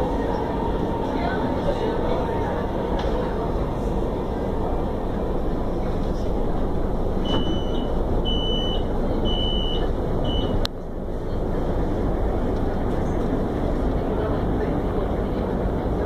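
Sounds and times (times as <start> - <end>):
train low rumble: 0.0 - 16.0
train doors shutting knock: 7.2 - 8.8.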